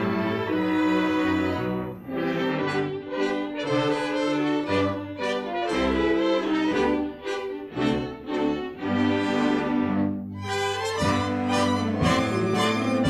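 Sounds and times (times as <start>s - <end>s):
orchestral music with brass: 0.0s - 13.0s.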